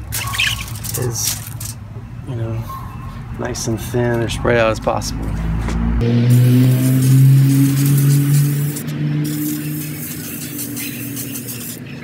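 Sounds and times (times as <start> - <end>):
low hum: 5.8 - 10.8
aerosol spray hissing: 6.3 - 11.8.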